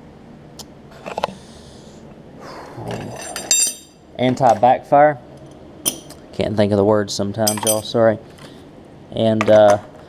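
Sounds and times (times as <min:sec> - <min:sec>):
man nasal breath: 0:01.2 - 0:02.9.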